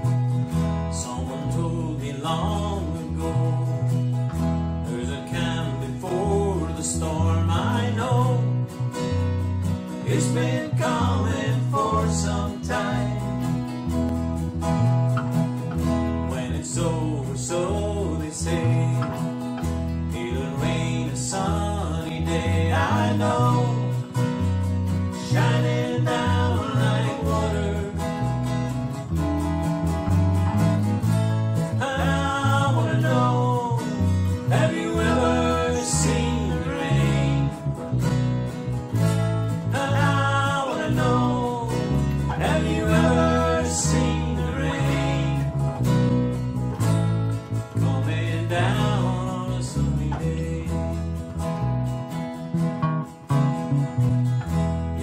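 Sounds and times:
bass guitar line: 0.0 - 55.0
strummed acoustic guitars: 0.0 - 55.0
person singing: 1.0 - 4.2, 4.8 - 8.6, 10.0 - 13.7, 16.2 - 24.2, 25.1 - 28.5, 31.6 - 37.8, 39.5 - 46.1, 47.6 - 51.2.

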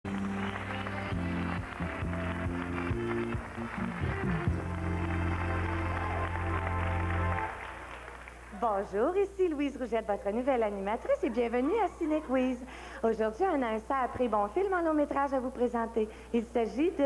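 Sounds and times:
quiz show theme music: 0.1 - 8.3.

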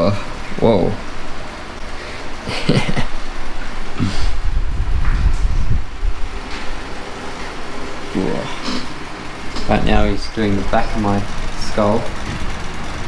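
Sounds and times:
low rumble: 4.3 - 6.4.

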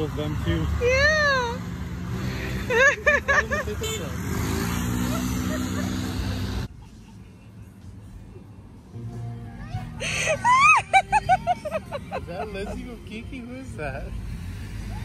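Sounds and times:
cars rolling past: 0.0 - 6.7
street noise: 0.0 - 15.0.

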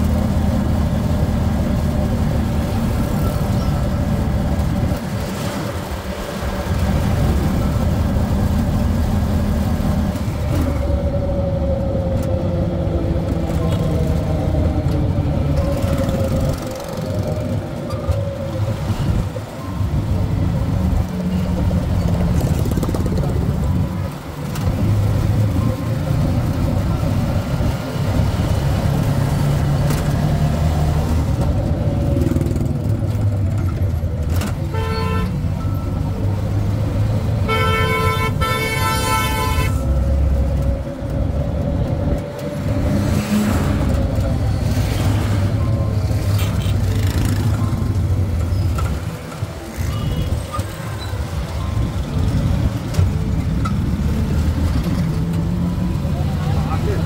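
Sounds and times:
vehicle engine and road noise: 0.0 - 57.0
car horn honking: 34.6 - 35.5, 37.4 - 39.9.

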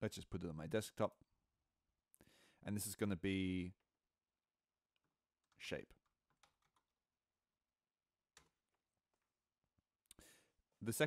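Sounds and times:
computer keyboard typing: 6.3 - 6.9.

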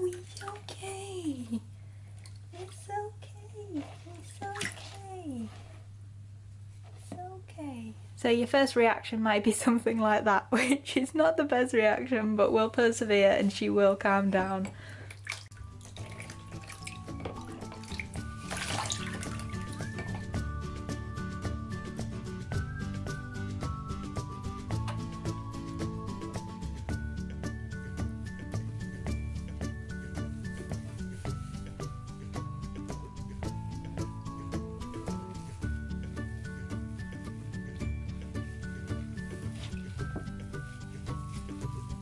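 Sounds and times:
water splashing in a tub: 0.0 - 0.9, 3.8 - 5.4, 15.0 - 20.5
background music: 15.5 - 42.0.

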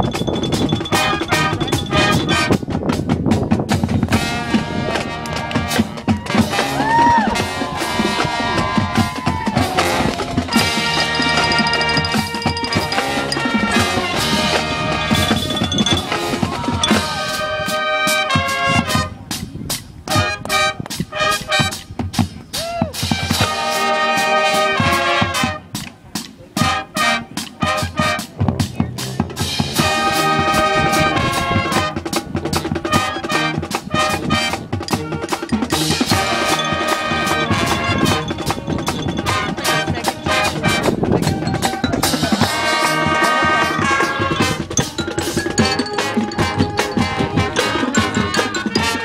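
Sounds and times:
drumline with snare: 0.0 - 49.0
brass chords: 0.8 - 2.7, 4.1 - 19.3, 20.1 - 21.9, 23.2 - 25.8, 26.6 - 28.7, 29.5 - 41.8, 42.4 - 49.0.

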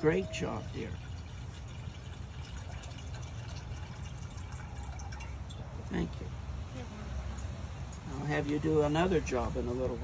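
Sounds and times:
water pouring into a bowl: 0.0 - 5.8.

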